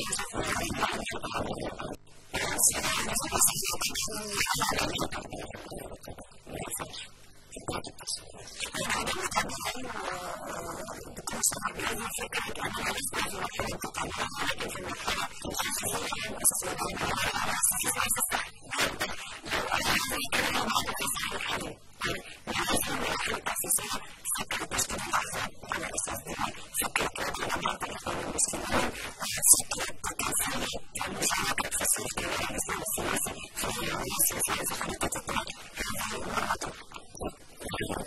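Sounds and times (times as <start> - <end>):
woman talking: 0.0 - 38.0.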